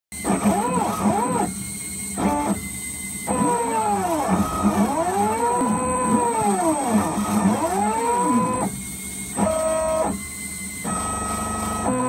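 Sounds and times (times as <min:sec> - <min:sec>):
stepper motors whining: 0:00.2 - 0:12.0.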